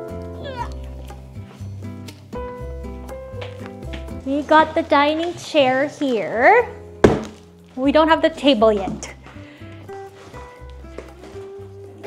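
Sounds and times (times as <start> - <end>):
background music with steady bass: 0.0 - 12.0.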